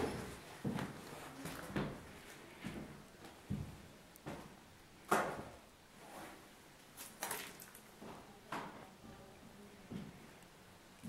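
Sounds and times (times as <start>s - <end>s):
footsteps on debris-strewn floor: 0.0s - 4.6s.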